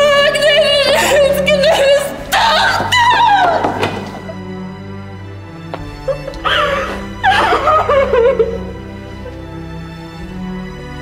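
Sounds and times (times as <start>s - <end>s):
dramatic background music: 0.0s - 11.0s
woman wailing: 6.1s - 8.7s.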